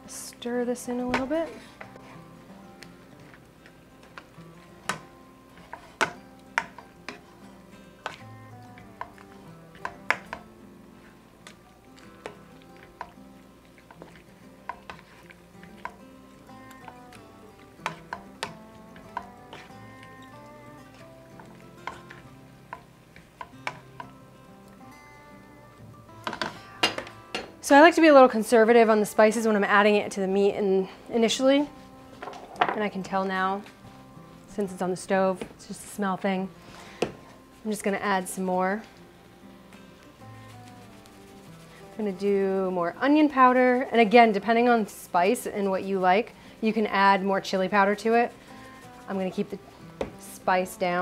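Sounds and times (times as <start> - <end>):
background music: 0.0 - 51.0.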